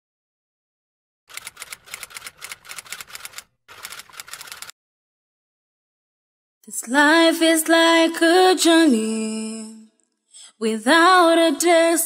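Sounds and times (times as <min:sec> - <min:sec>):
typewriter keys clacking: 0:01.3 - 0:04.7.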